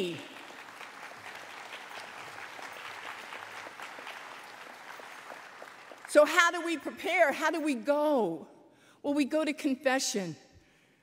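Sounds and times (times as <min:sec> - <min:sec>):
audience applauding: 0:00.0 - 0:06.1.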